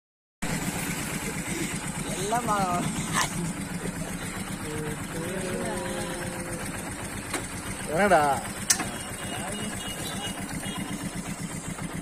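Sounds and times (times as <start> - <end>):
vehicle engine idling: 0.4 - 12.0.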